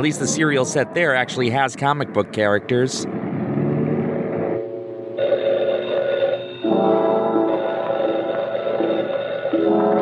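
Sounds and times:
telephone bell ringing: 0:05.2 - 0:10.0
background film music: 0:06.6 - 0:10.0.

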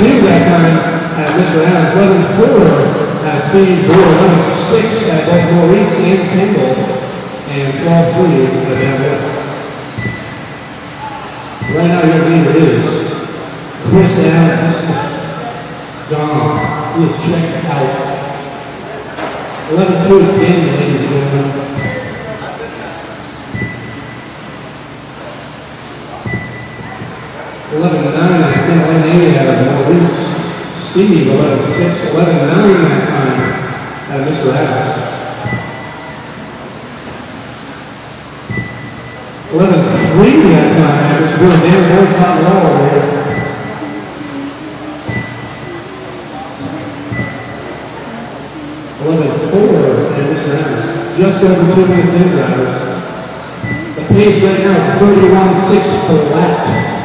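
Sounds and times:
whir of electric motors and tyres: 0:00.0 - 0:57.0
faint background voices: 0:39.6 - 0:57.0
brief high tone: 0:39.9 - 0:52.4.

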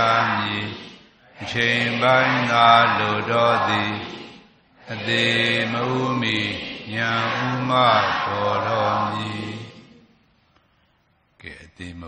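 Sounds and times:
person chanting: 0:00.0 - 0:10.2.

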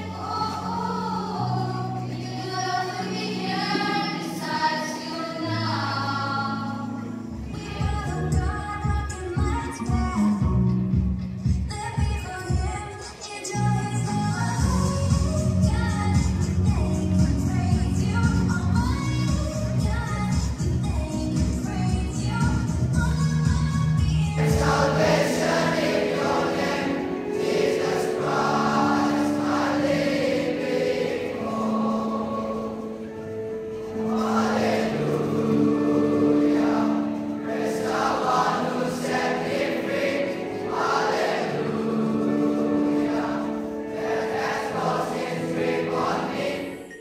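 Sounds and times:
boys' choir singing: 0:00.0 - 0:08.3, 0:24.4 - 0:47.0.

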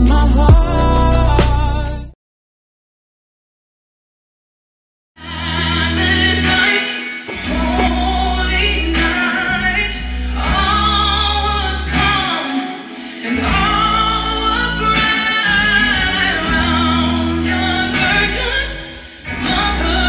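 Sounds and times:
sustained bass: 0:00.0 - 0:02.2, 0:07.4 - 0:12.3, 0:13.4 - 0:20.0
gospel choir singing: 0:05.3 - 0:20.0.

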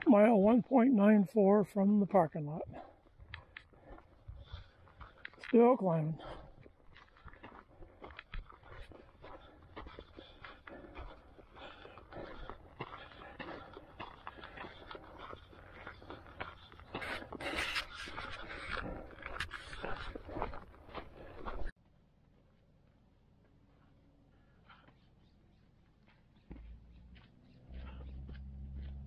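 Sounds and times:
footsteps scuffing on dirt: 0:00.1 - 0:21.8, 0:24.8 - 0:29.0
person breathing hard: 0:02.7 - 0:05.4, 0:06.2 - 0:21.7, 0:23.8 - 0:25.2.

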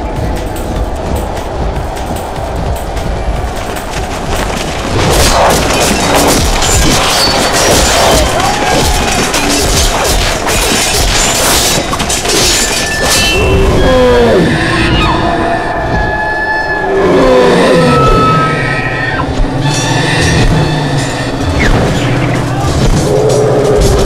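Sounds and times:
music: 0:00.0 - 0:24.0
weapons clashing: 0:02.2 - 0:13.6
voices crying out: 0:12.8 - 0:23.9.

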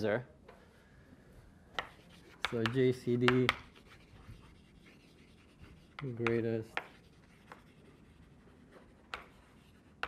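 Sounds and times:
chalk tap: 0:01.7 - 0:10.0
chalk writing on blackboard: 0:01.8 - 0:10.0.

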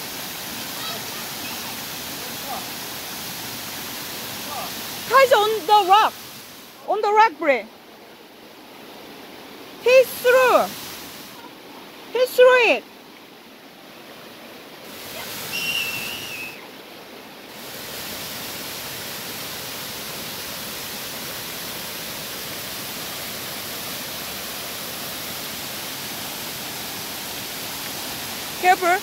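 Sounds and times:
waterfall and stream rushing: 0:00.0 - 0:29.0
high whistle sliding down: 0:15.3 - 0:16.6.

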